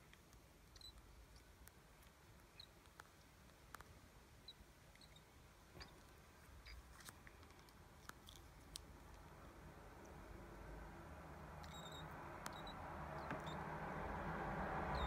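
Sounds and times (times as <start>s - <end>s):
bird peeps: 2.5s - 2.8s, 4.4s - 6.0s, 11.6s - 13.6s.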